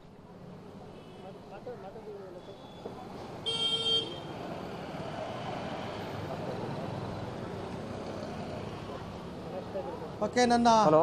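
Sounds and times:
street traffic hum: 0:00.0 - 0:11.0
vehicle horn toot: 0:03.4 - 0:04.3.

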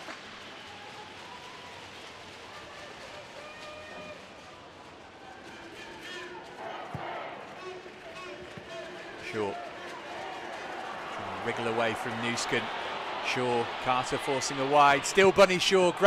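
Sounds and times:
stadium crowd ambience: 0:00.0 - 0:16.0.

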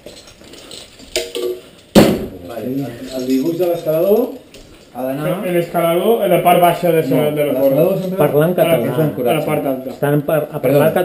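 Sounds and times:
climbing hardware jingling: 0:00.0 - 0:01.9
sharp knock: 0:02.0 - 0:02.4.

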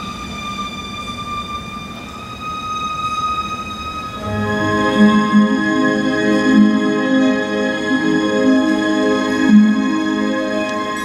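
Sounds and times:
orchestral high note: 0:04.0 - 0:11.0.

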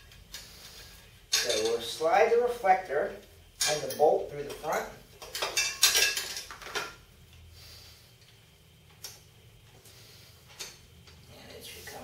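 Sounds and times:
small metal parts clinking: 0:05.2 - 0:06.9.

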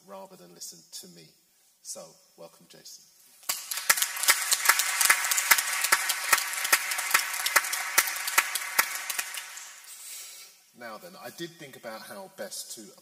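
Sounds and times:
audience applauding: 0:03.5 - 0:09.9.

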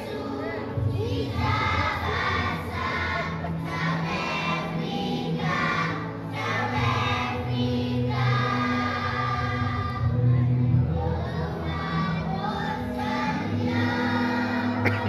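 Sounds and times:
children's choir singing: 0:00.0 - 0:15.0
sustained musical accompaniment: 0:00.0 - 0:15.0.

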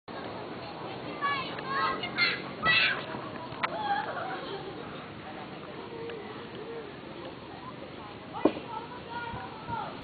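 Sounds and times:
group chatter: 0:00.1 - 0:10.0
children calling out: 0:01.2 - 0:05.0.

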